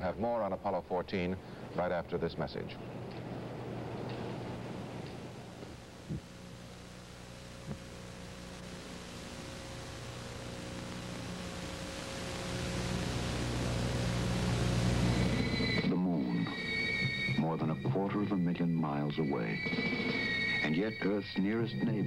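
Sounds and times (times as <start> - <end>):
steady hiss: 0.0 - 22.0
low hum: 2.8 - 22.0.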